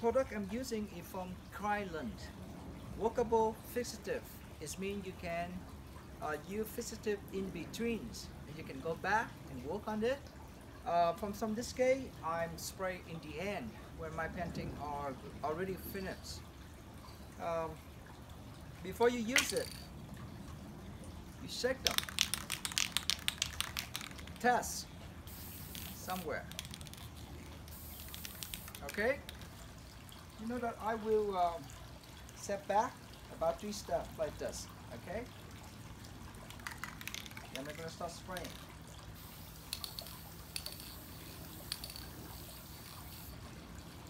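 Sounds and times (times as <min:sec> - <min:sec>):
aerosol can ball rattling: 0:19.3 - 0:19.9, 0:21.8 - 0:29.5, 0:36.4 - 0:43.4.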